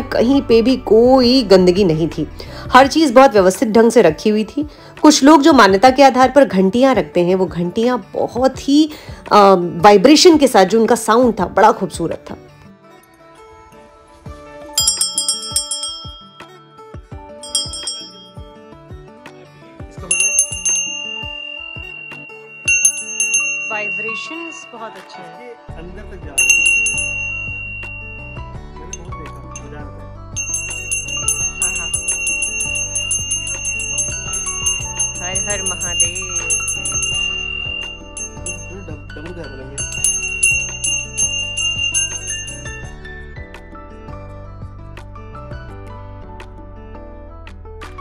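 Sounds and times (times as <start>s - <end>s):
brass hand bell ringing: 14.8s - 18.4s, 20.1s - 25.0s, 26.4s - 29.7s, 30.4s - 43.1s.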